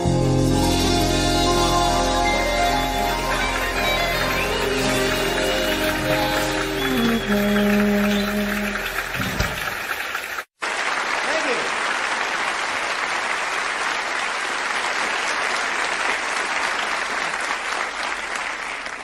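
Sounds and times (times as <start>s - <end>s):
audience applause: 2.2s - 19.0s.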